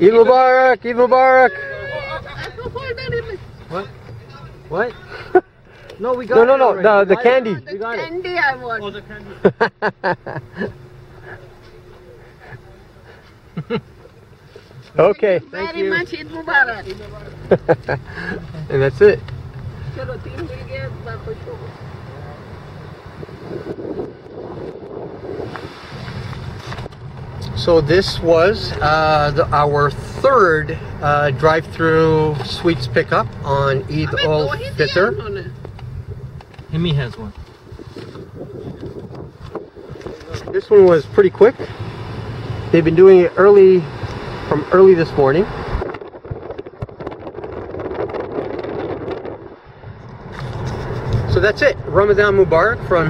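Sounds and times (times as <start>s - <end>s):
car rumbling slowly: 0.0s - 53.0s
wind buffeting microphone: 2.2s - 3.8s, 19.4s - 29.5s, 33.9s - 41.1s, 45.2s - 53.0s.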